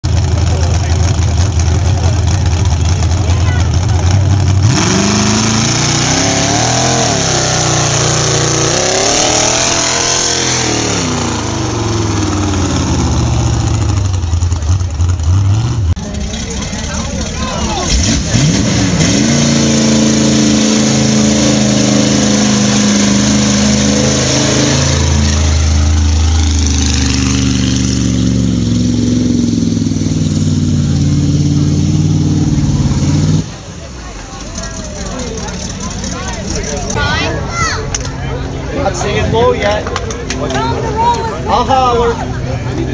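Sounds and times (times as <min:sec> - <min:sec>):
truck engines revving: 0:00.0 - 0:42.9.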